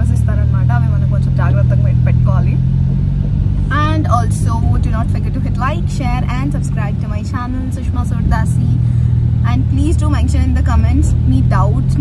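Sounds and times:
woman talking: 0.0 - 2.6, 3.7 - 12.0
car engine low hum: 0.0 - 12.0.

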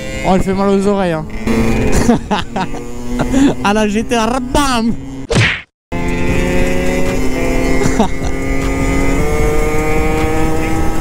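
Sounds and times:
motorbike engine cruising: 0.0 - 5.3, 5.9 - 11.0
wind and road noise: 0.0 - 11.0
short swish: 5.3 - 5.7.

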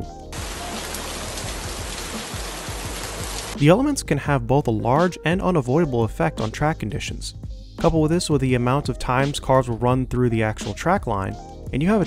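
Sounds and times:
heavy rain pouring: 0.3 - 3.6.

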